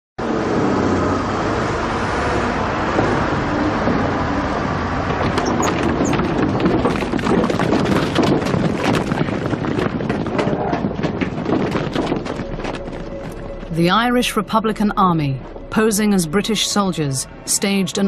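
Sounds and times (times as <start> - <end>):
motor vehicle rumble: 0.2 - 18.0
clatter of sharp knocks: 5.0 - 13.4.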